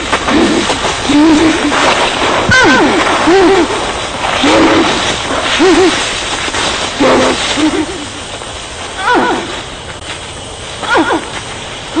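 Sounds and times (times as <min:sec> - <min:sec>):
steady night ambience hiss: 0:00.0 - 0:12.0.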